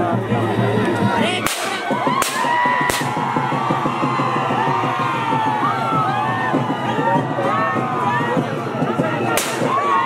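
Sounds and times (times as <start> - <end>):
crowd shouting and cheering: 0.0 - 10.0
gunshots: 9.4 - 9.8.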